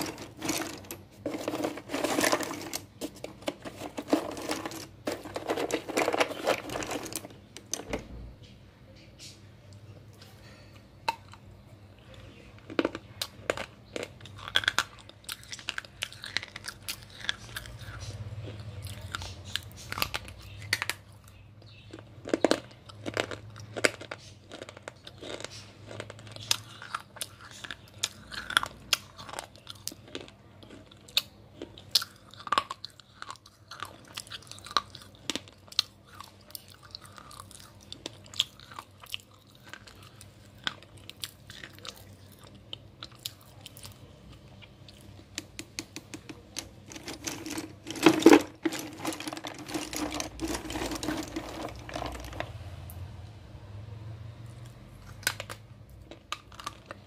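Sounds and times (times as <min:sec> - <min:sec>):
slate pencil crunching: 0:00.0 - 0:07.3, 0:47.0 - 0:52.4.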